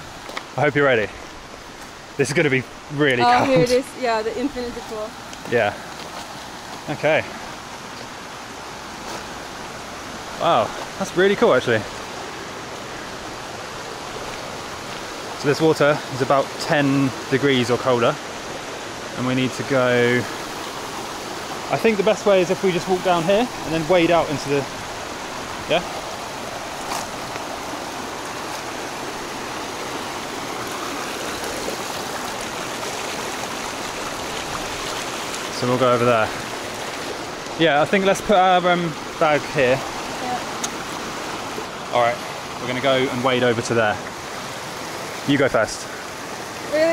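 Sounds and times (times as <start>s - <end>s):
river rushing over stones: 0.0s - 46.9s.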